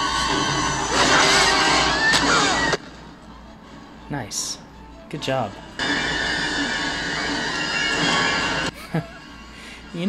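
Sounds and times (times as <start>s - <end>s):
tense orchestral horror score: 0.0s - 4.1s, 5.4s - 10.0s.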